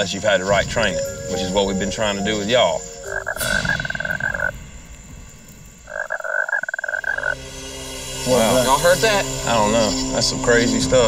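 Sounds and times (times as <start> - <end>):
croaking animal call rattle: 2.1 - 7.4.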